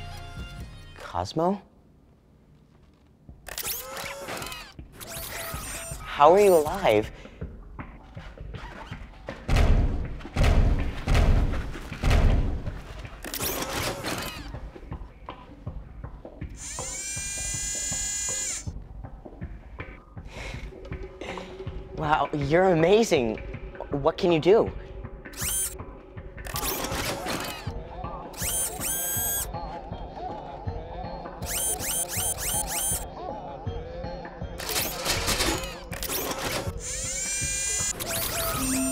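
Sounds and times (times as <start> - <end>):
robot servo motors whining: 3.5 - 6.1, 13.2 - 14.5, 16.6 - 18.7, 25.4 - 25.8, 26.4 - 27.7, 28.4 - 29.5, 31.4 - 33.0, 34.6 - 38.9
warbling robot electronic tones: 36.9 - 38.9.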